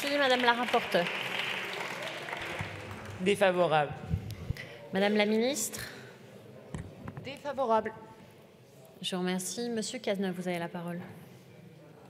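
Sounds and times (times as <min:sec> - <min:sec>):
group applauding: 0:00.0 - 0:03.7.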